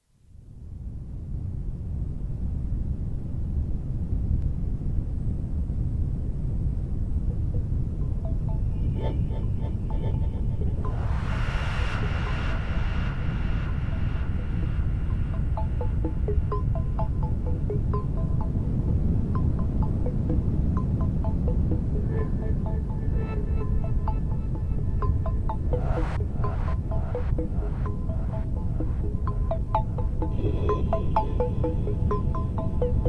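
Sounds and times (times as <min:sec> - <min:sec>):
deep synthesizer drone: 0:07.4 - 0:33.0
bright sustained synth tone: 0:08.0 - 0:19.9, 0:21.1 - 0:33.0
short high synth notes: 0:10.6 - 0:18.3.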